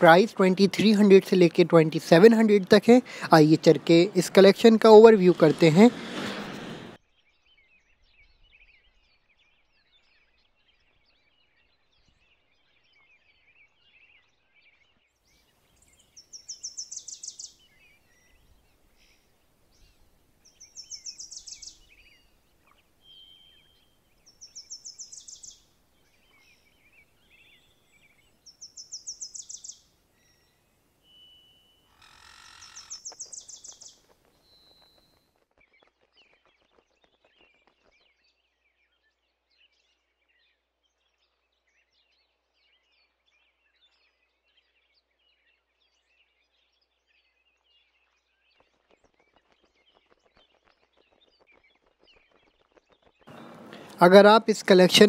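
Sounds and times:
loud rapid trilled animal call: 31.9 - 33.4.

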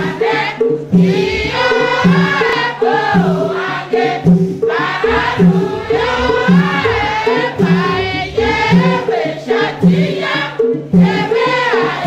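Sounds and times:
choir of women singing: 0.0 - 12.0
low repeating notes: 5.1 - 8.9.

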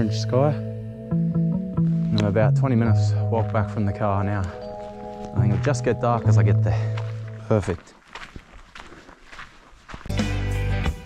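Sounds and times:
footsteps on dirt trail: 1.7 - 10.4.

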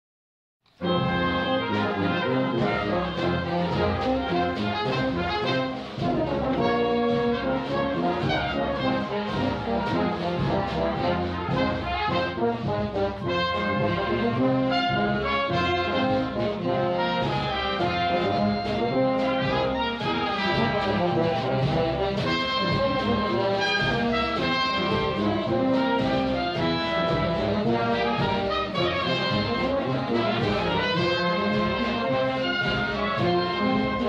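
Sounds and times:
wind band playing a march: 0.7 - 34.0.

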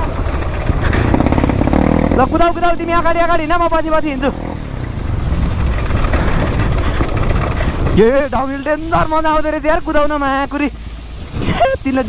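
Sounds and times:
dirt bike engine at low revs: 0.0 - 11.9.

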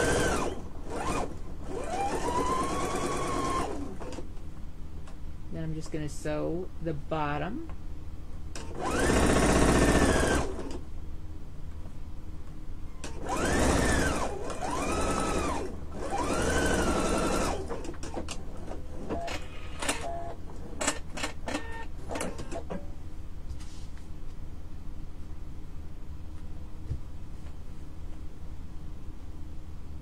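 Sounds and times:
sewing machine motor whine: 0.0 - 4.2, 8.6 - 10.8, 13.0 - 20.1.

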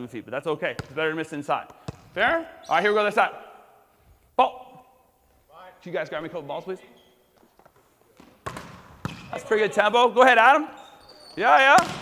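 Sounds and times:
volleyball struck sharply: 11.8 - 12.0.

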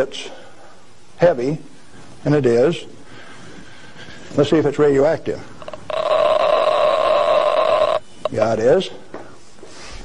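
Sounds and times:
geiger counter rapid clicking: 5.6 - 8.4.

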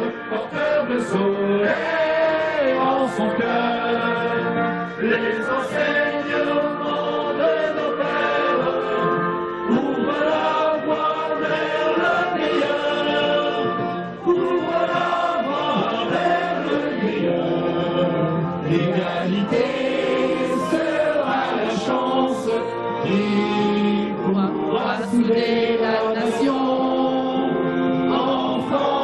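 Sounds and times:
group of people singing: 0.0 - 29.0.

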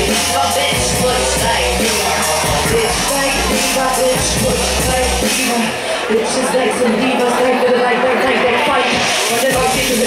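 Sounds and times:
hip hop beat with heavy bass: 0.0 - 10.0.

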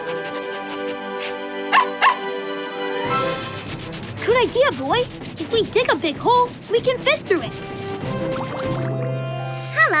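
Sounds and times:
background music: 0.0 - 10.0
cartoon puppy yipping: 1.7 - 2.2.

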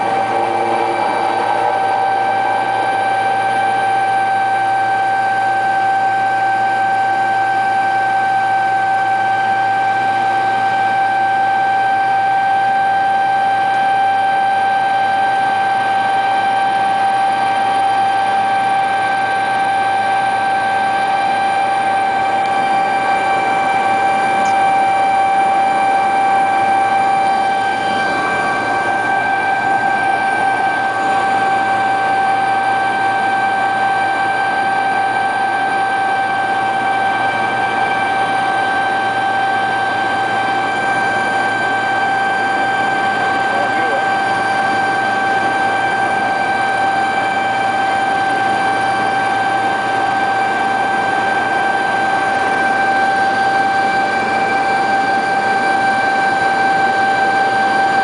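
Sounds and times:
helicopter engine and rotor rush: 0.0 - 58.0
high-pitched helicopter whine: 0.0 - 58.0.

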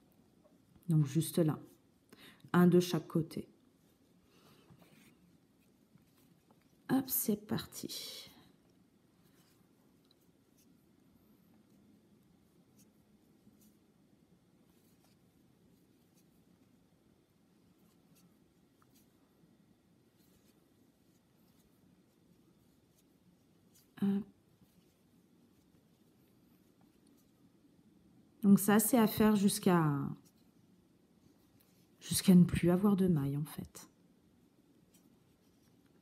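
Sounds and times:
crochet hook scratching yarn: 2.9 - 7.8, 9.2 - 13.9, 14.5 - 19.4, 20.0 - 27.6, 28.6 - 33.0, 34.7 - 36.0.

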